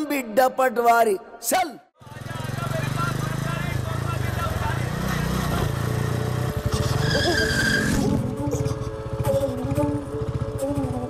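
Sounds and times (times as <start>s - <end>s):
tyre squeal: 6.7s - 8.8s.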